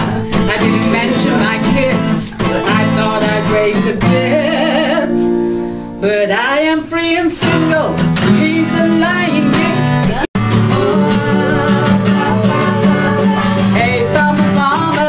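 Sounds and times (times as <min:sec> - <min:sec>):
woman singing: 0:00.0 - 0:05.4, 0:06.0 - 0:15.0
strummed acoustic guitars: 0:00.0 - 0:15.0.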